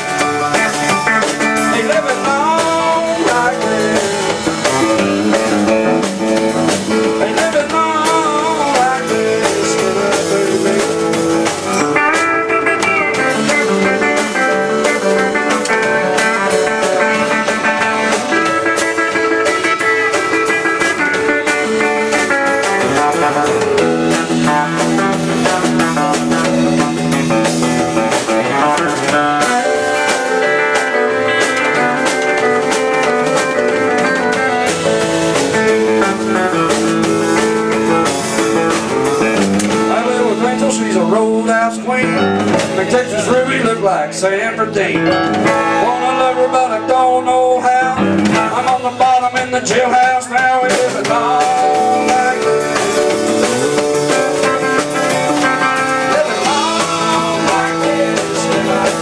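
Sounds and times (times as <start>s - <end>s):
bass guitar: 0.0s - 59.0s
drum kit: 0.0s - 59.0s
electric guitar: 0.0s - 59.0s.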